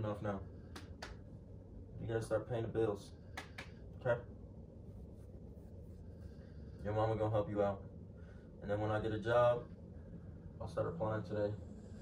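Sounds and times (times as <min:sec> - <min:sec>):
faint low steady hum: 0:00.0 - 0:12.0.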